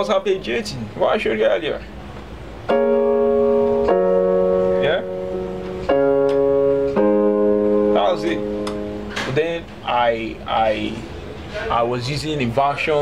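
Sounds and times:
electronic keyboard piano chords: 2.5 - 10.2
man talking: 4.8 - 5.1, 8.0 - 8.5, 9.2 - 13.0.

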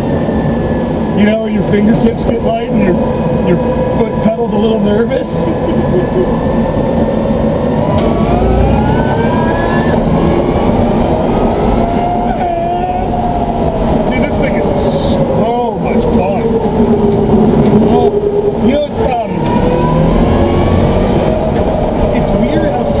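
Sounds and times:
road and tyre noise: 0.0 - 23.0
electric motor whine: 5.7 - 15.0.

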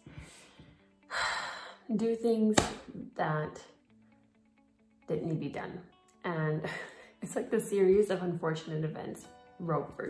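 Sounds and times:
woman breathing: 0.0 - 1.9.

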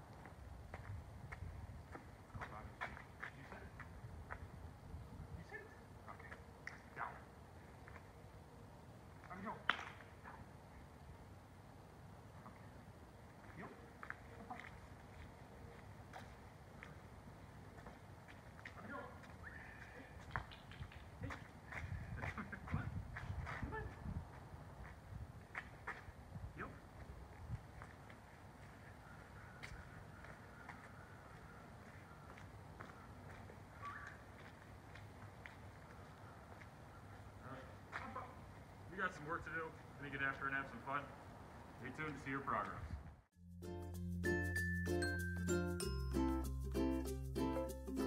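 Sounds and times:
faint outdoor ambience: 0.0 - 43.4.

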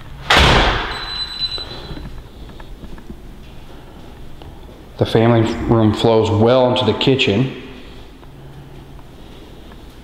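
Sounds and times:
door banging shut: 0.3 - 1.0.

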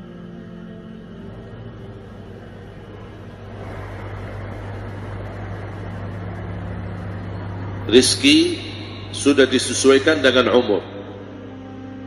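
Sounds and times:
steady low hum: 0.0 - 12.0
even rushing noise: 1.2 - 10.4.

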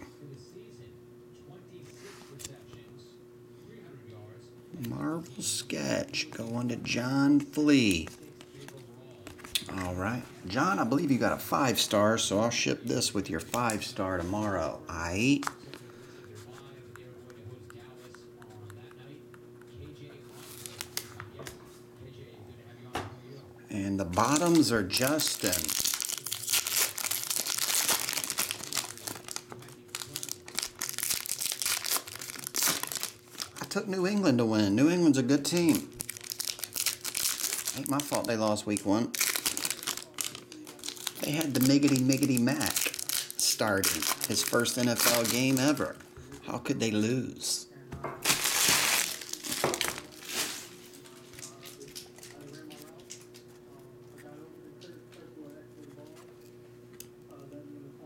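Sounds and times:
trading cards rustling: 6.1 - 16.7, 20.3 - 21.6, 24.0 - 33.8, 35.5 - 46.1, 48.2 - 53.5
foil wrapper crinkling: 20.3 - 21.2, 24.1 - 34.2, 35.4 - 46.1, 48.2 - 53.6.

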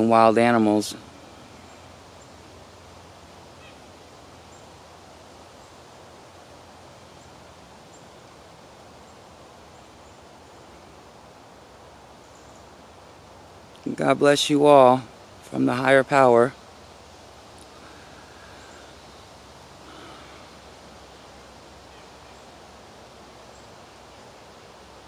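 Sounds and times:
woodland background noise: 0.0 - 25.0.

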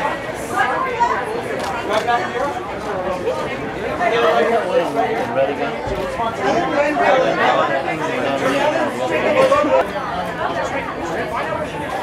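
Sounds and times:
chatter of many voices: 0.0 - 12.0.

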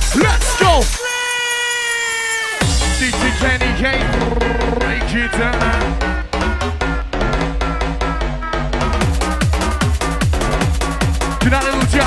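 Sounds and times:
hard dance music: 0.0 - 1.2, 2.6 - 12.0.

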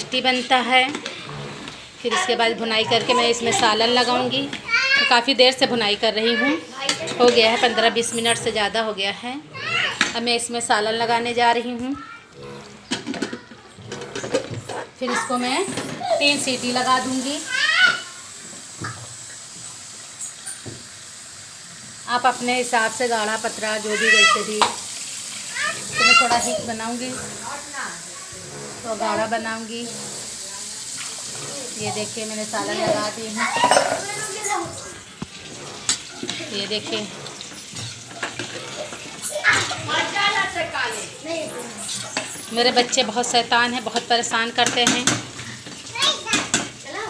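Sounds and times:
ladle scraping metal pot: 0.0 - 11.6, 25.7 - 46.6
spoon stirring food in a pot: 41.8 - 46.7.

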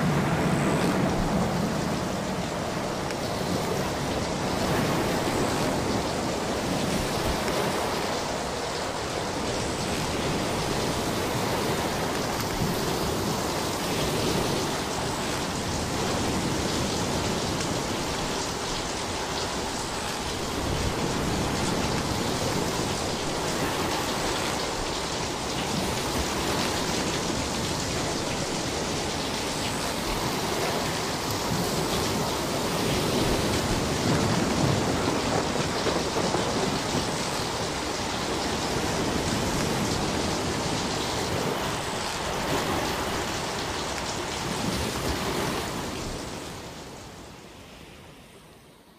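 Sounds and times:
small waves washing up beach: 0.0 - 48.7.

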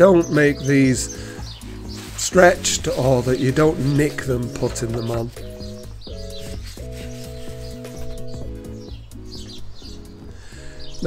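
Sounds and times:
music with sustained chords: 0.0 - 11.0
small birds chirping: 0.0 - 11.0.

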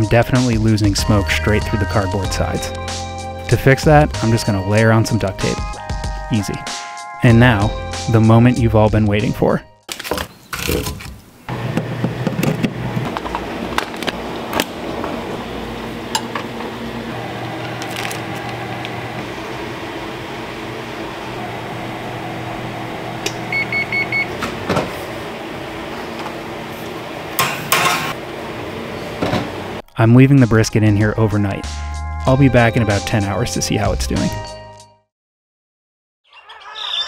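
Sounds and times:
electrical hum: 10.4 - 29.8
high-pitched appliance beeps: 23.2 - 24.4.

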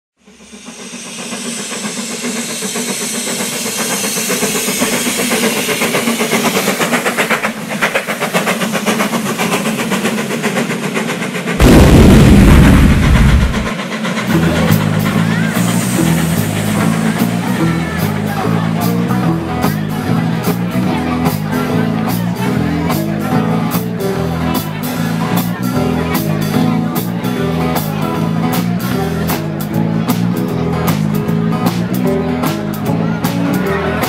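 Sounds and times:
cymbal strokes: 0.2 - 7.1
steam locomotive chuffing and hiss: 0.2 - 34.0
stepping bass line: 11.6 - 13.7
loud low boom: 11.6 - 13.8
band music: 11.6 - 34.0.

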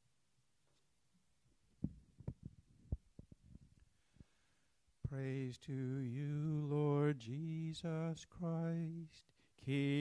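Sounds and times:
microphone handling thumps: 1.8 - 4.3.

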